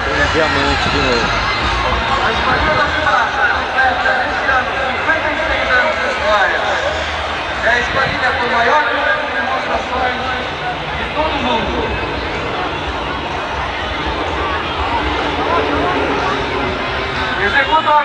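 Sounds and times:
crowd chatter: 0:00.0 - 0:18.0
steady low rumble: 0:10.0 - 0:17.8.

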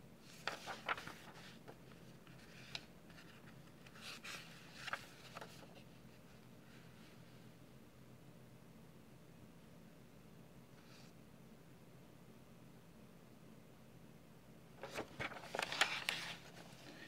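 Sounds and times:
faint low hum: 0:00.0 - 0:17.0
paper pages turning: 0:00.2 - 0:05.9, 0:14.8 - 0:17.0
crackly paper rustle: 0:00.2 - 0:07.2, 0:14.8 - 0:17.0.

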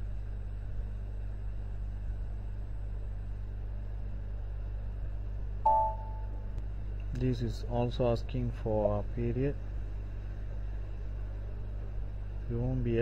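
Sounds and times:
low electrical hum: 0:00.0 - 0:13.0
brief ringing tone: 0:05.7 - 0:06.5.

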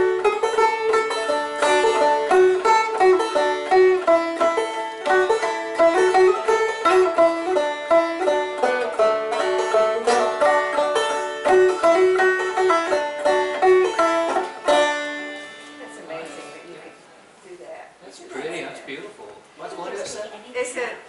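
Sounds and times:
banjo picking a lively tune: 0:00.0 - 0:16.5
acoustic guitars: 0:00.0 - 0:16.8.

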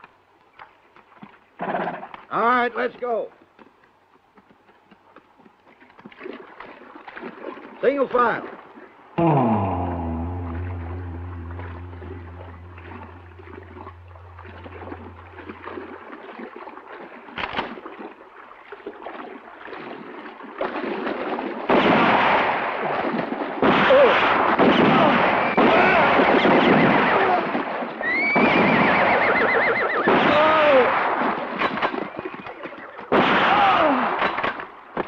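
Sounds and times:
horses whinnying: 0:25.6 - 0:30.6.

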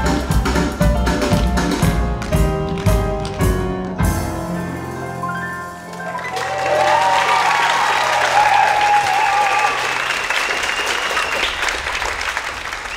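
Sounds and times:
audience applauding and cheering: 0:05.8 - 0:12.9
voices whooping: 0:06.1 - 0:10.5.

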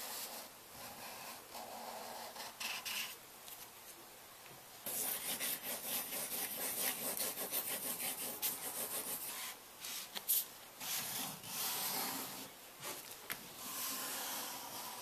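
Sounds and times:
marker scratching on paper: 0:00.0 - 0:03.2, 0:04.9 - 0:13.0, 0:13.6 - 0:15.0.

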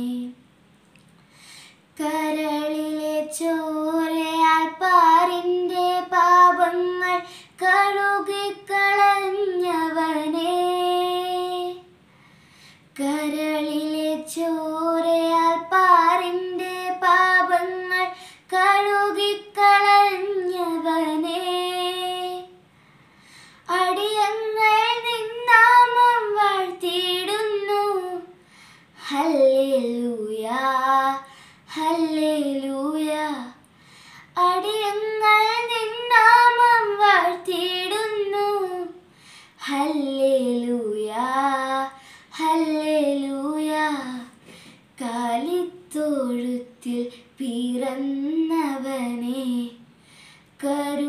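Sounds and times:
girl singing unaccompanied: 0:00.0 - 0:00.5, 0:01.9 - 0:12.0, 0:12.8 - 0:22.7, 0:23.6 - 0:49.9, 0:50.5 - 0:51.0
short breaths: 0:01.2 - 0:01.9, 0:12.0 - 0:12.9, 0:22.7 - 0:23.7, 0:28.4 - 0:29.0, 0:33.7 - 0:34.3, 0:39.1 - 0:39.6, 0:44.4 - 0:44.9, 0:49.9 - 0:50.6.

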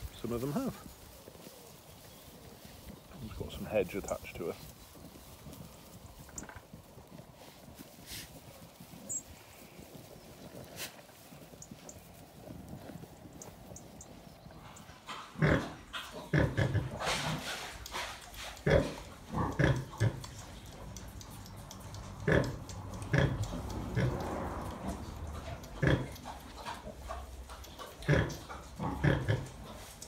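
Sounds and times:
faint field noise: 0:00.0 - 0:30.0
sow grunting: 0:15.2 - 0:17.4, 0:18.6 - 0:20.3, 0:22.2 - 0:27.3, 0:27.9 - 0:29.9.

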